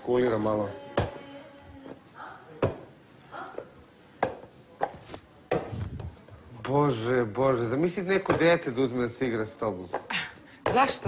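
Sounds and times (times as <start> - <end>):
ball knocking on hard surfaces: 2.6 - 2.9, 3.6 - 6.0, 8.2 - 8.6.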